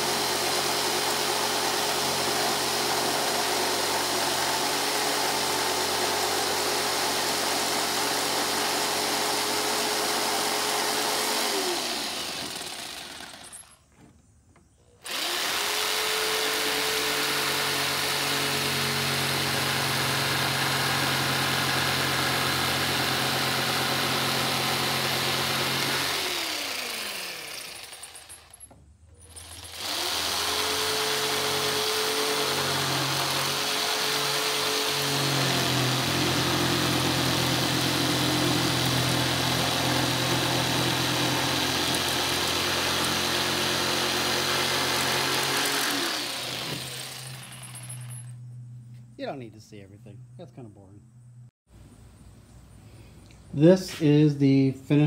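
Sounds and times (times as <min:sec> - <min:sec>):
jigsaw cutting wood: 0:00.0 - 0:13.8, 0:15.0 - 0:28.6, 0:29.3 - 0:47.8.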